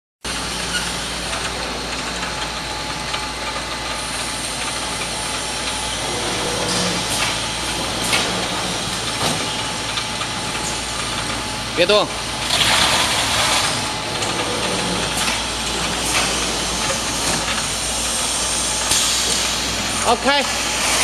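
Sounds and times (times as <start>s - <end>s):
packing machine humming: 0.3s - 21.0s.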